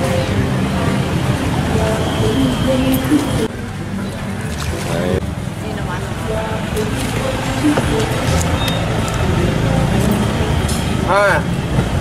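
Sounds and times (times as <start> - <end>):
indistinct background voices: 0.0 - 11.5
traffic rumble: 0.0 - 12.0.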